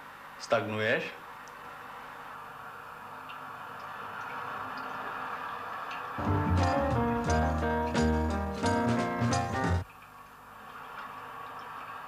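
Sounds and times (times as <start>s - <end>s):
old film soundtrack hiss: 0.0s - 12.0s.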